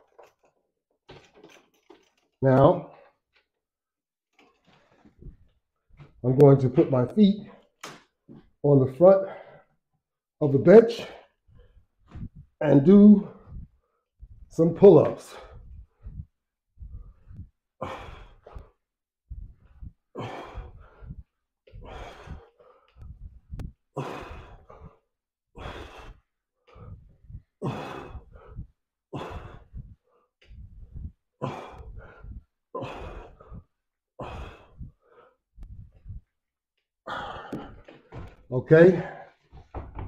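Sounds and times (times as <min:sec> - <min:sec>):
man breathing hard: 0:09.2 - 0:09.8, 0:15.2 - 0:36.3, 0:37.1 - 0:38.4.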